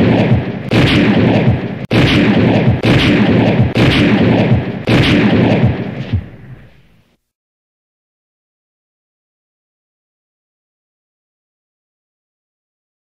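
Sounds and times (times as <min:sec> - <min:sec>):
echoing gunshots: 0:00.0 - 0:07.0.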